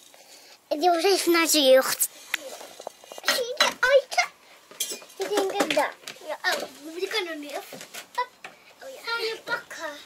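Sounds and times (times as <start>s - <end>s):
child's high voice: 3.2s - 4.4s, 5.2s - 10.0s
light clicks and clinks: 4.7s - 5.5s.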